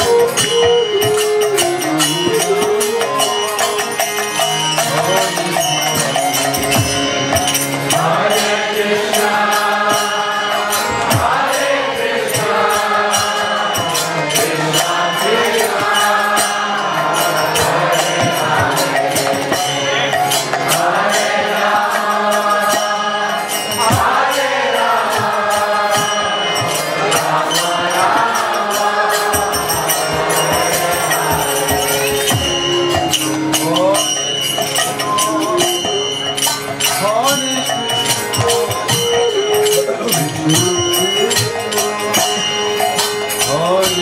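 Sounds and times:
hand cymbals ringing: 0.0s - 44.0s
harmonium chords: 0.0s - 44.0s
voices chanting: 7.9s - 32.6s
hand drum strokes: 23.8s - 44.0s.

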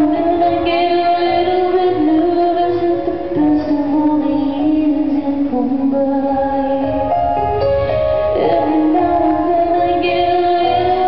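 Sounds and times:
woman singing: 0.0s - 7.5s, 8.2s - 11.0s
piano accompaniment: 0.0s - 11.0s.

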